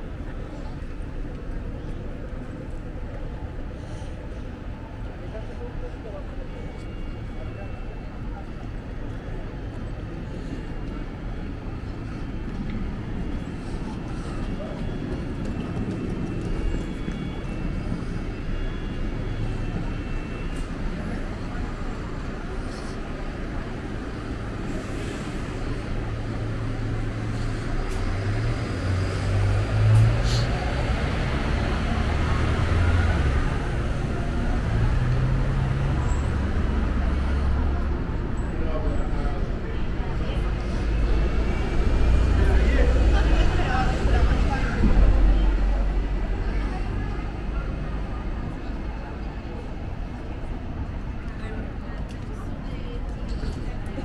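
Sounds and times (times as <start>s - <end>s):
indistinct voices of passers-by: 0.0s - 54.0s
traffic noise: 0.0s - 54.0s.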